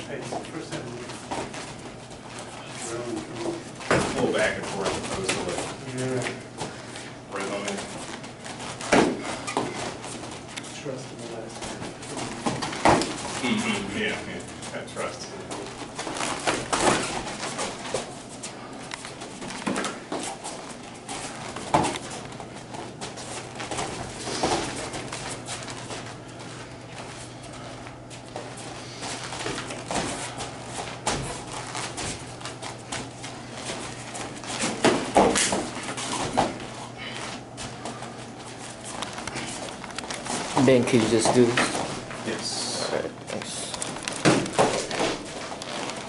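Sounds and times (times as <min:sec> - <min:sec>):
footwork on mats: 0:00.0 - 0:46.0
steady low hum: 0:00.0 - 0:46.0.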